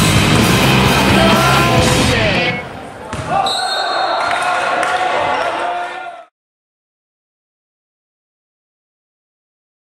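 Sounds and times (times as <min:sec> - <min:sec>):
echoing voices: 0:00.5 - 0:03.5.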